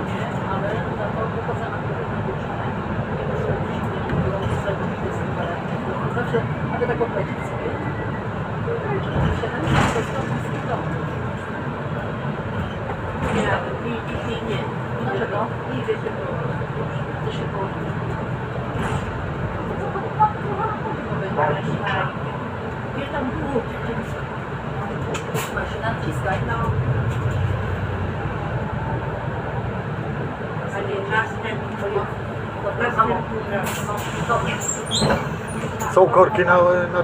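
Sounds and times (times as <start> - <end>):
bus engine and road drone: 0.0 - 37.0.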